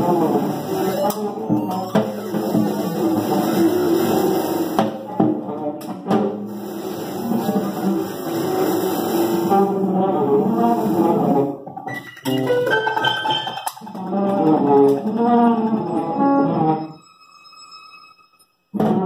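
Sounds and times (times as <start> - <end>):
live band playing: 0.0 - 16.8.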